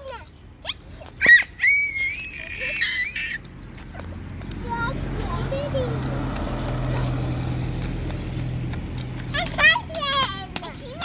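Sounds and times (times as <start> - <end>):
toddler squealing: 0.7 - 3.4.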